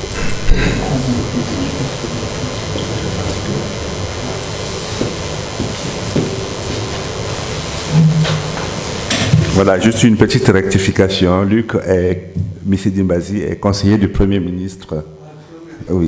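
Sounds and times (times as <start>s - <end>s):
low hum: 0.0s - 9.7s
low rumbling room noise: 0.0s - 16.0s.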